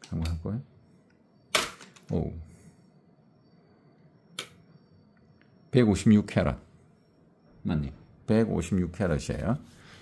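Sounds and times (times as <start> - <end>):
faint high-pitched whine: 0.0 - 10.0.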